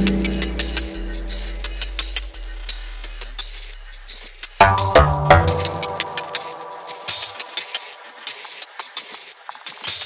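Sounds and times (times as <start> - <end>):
faint held synth tone: 0.0 - 2.6.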